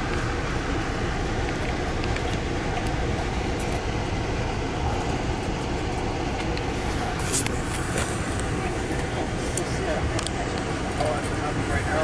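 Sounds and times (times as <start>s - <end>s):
train rumbling inside car: 0.0s - 12.0s.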